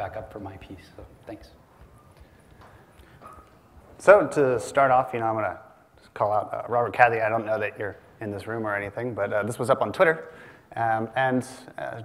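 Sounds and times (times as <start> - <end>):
low room noise: 0.0 - 12.0
faint footsteps on a stage: 1.0 - 4.1.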